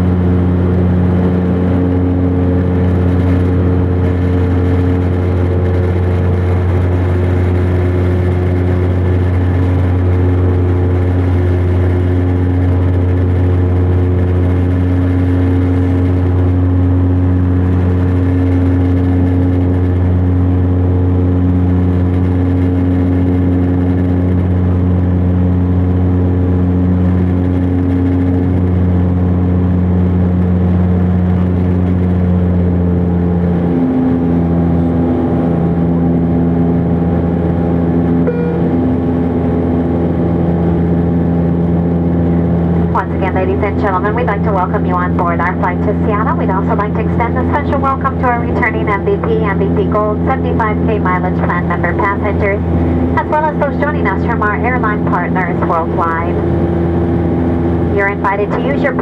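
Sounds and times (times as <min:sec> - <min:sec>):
turboprop cabin drone: 0:00.0 - 0:59.0.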